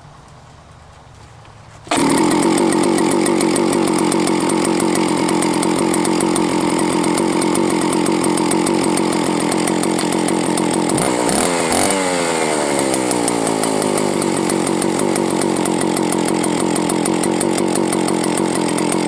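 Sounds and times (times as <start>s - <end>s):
chainsaw engine running: 1.9s - 19.0s.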